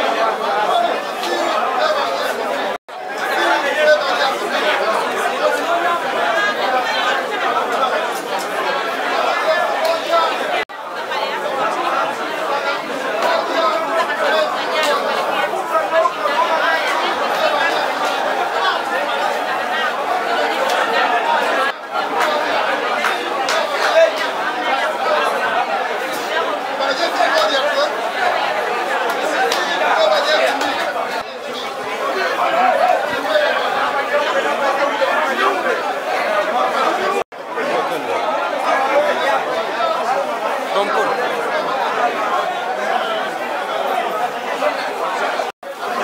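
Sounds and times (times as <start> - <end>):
crowd babble: 0.0 - 46.0.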